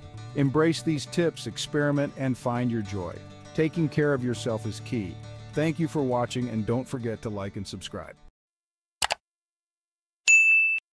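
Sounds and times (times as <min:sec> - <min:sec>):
bell-like ding: 0:10.3 - 0:10.8.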